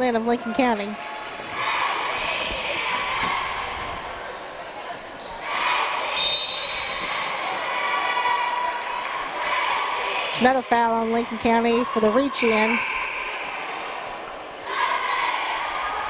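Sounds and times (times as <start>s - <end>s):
mixed voices of crowd: 0.0s - 16.0s.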